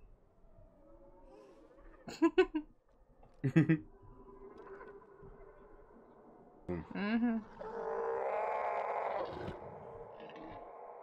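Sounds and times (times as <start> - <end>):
faint distant creature growls: 7.6 - 11.0.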